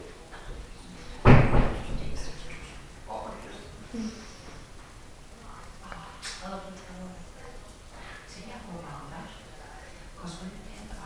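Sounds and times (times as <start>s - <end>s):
loud thump: 1.2s - 2.3s.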